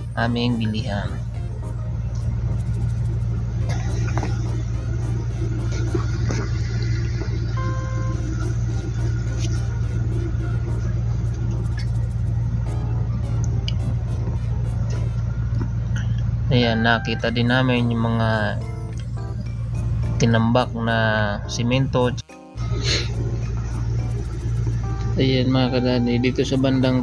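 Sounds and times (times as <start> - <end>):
faint background music: 0.0 - 27.0
low rumble: 0.0 - 27.0
high beep: 7.6 - 8.3.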